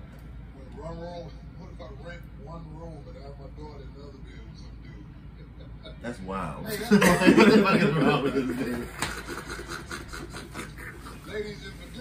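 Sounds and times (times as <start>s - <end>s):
breathy laughter: 9.2s - 11.4s.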